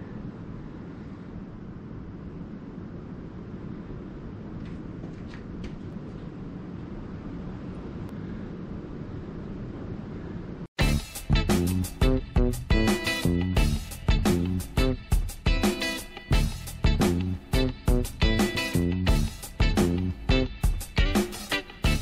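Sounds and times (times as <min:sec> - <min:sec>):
low background rumble: 0:00.0 - 0:10.8.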